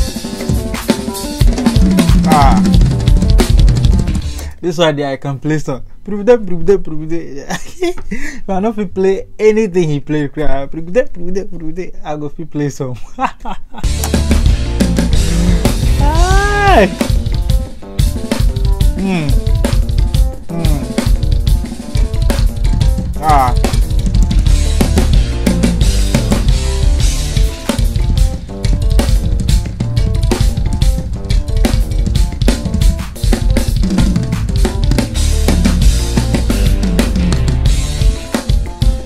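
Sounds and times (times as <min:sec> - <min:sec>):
rapid drum kit playing: 0:00.0 - 0:04.5, 0:13.8 - 0:39.0.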